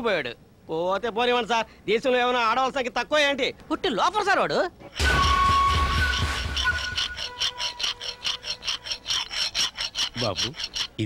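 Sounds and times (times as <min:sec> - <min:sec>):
rasping scraping strokes: 0:05.0 - 0:11.0.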